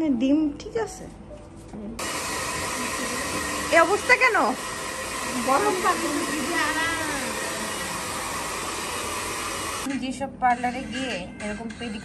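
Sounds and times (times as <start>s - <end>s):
electric blower motor whirring: 2.0s - 9.9s.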